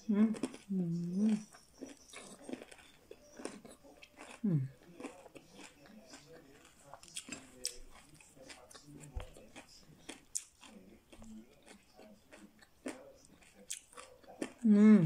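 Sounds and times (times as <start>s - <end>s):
chewing crunchy fried food: 0.0s - 14.7s
person humming mmm: 0.1s - 1.4s, 4.4s - 4.7s, 14.7s - 15.0s.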